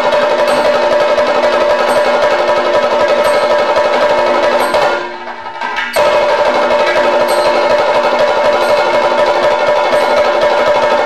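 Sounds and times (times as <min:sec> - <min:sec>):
fast drum roll: 0:00.0 - 0:11.0
steady high tone: 0:00.0 - 0:11.0.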